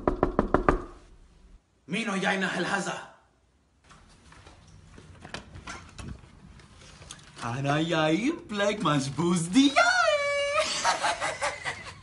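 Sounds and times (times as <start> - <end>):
rapid knocking on door: 0.0 - 1.0.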